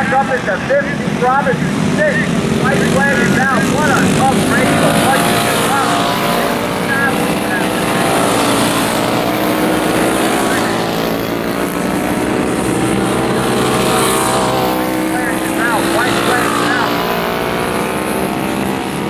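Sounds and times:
go-kart engines racing: 0:00.0 - 0:19.0.

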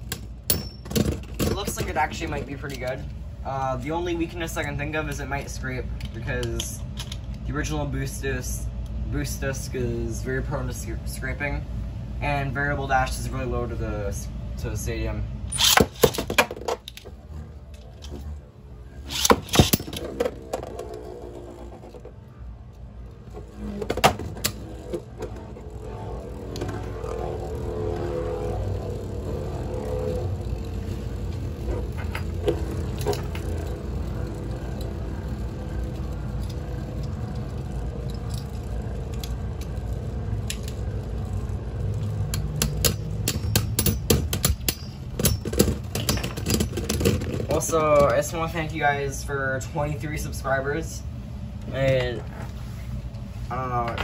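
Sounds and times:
spinning tops whirring: 0:15.5 - 0:45.2.

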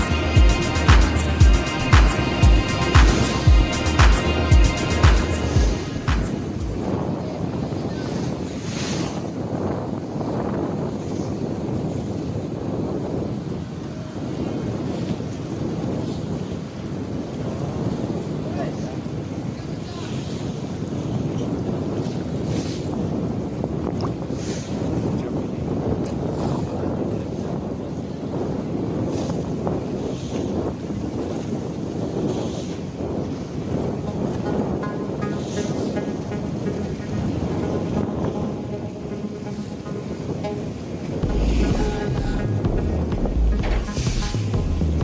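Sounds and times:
music with deep bass: 0:00.0 - 0:06.8, 0:34.2 - 0:45.0
choppy sea water: 0:00.0 - 0:45.0
wind on microphone: 0:00.0 - 0:45.0.

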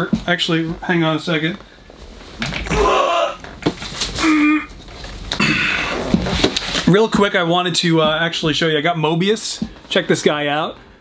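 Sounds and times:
rustling and handling noises: 0:03.4 - 0:10.9.

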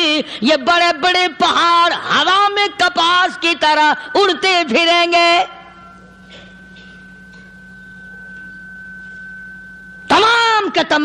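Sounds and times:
low steady hum: 0:01.3 - 0:11.0.

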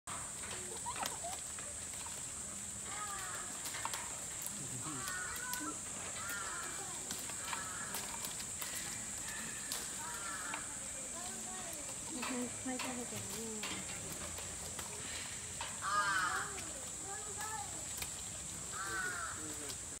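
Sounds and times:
leaves rustling: 0:00.1 - 0:20.0
steady high hiss: 0:00.1 - 0:20.0
twigs snapping: 0:03.0 - 0:12.2, 0:12.8 - 0:19.9.

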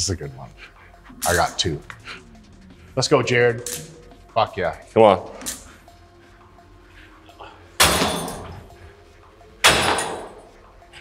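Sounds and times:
weight stack metal clanks: 0:07.8 - 0:08.7, 0:09.6 - 0:10.5.

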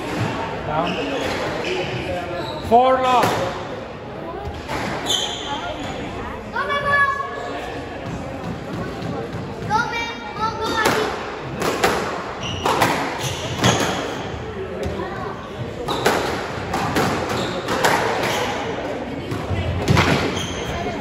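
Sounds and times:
court shoes squeaking on wooden floor: 0:00.1 - 0:03.4, 0:04.5 - 0:06.0, 0:12.3 - 0:18.7, 0:19.9 - 0:21.0.

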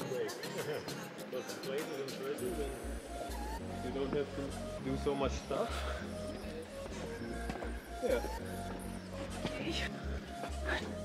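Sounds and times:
music with held tones and bass: 0:02.4 - 0:11.0.

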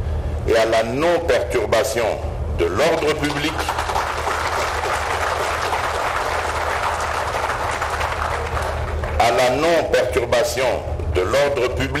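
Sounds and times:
audience applauding: 0:03.0 - 0:09.6.

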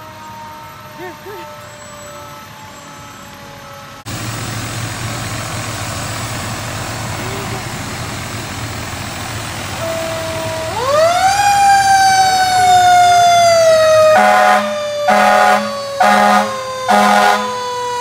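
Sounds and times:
fire truck siren: 0:00.0 - 0:18.0
truck engine rumble: 0:00.0 - 0:18.0
air horn blasts: 0:14.1 - 0:17.6.

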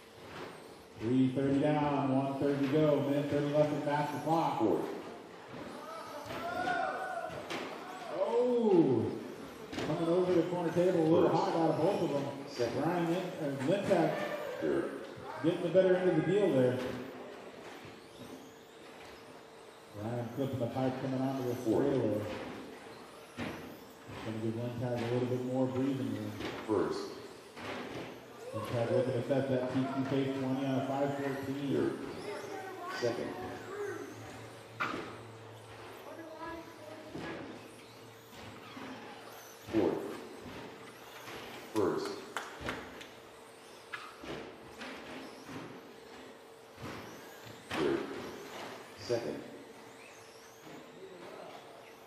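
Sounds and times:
electric motors whining: 0:00.0 - 0:52.0.

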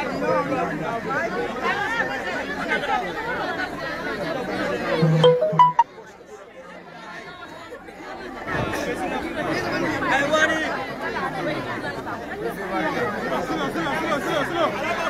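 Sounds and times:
crowd talking and calling out: 0:00.0 - 0:15.0.

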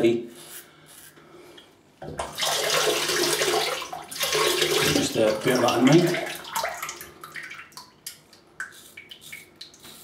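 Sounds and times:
water running from tap into sink: 0:02.2 - 0:07.0.

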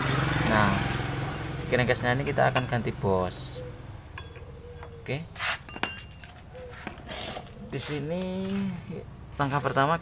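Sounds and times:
metal parts clinking: 0:04.2 - 0:07.5.

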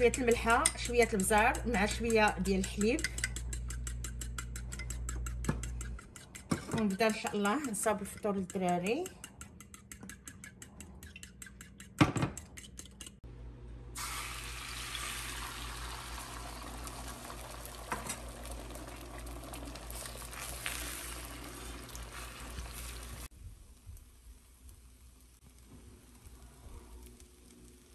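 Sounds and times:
spoon beating eggs in bowl: 0:00.0 - 0:13.2
utensil clicking on pan: 0:00.0 - 0:13.2
egg sizzling in frying pan: 0:14.0 - 0:27.9.

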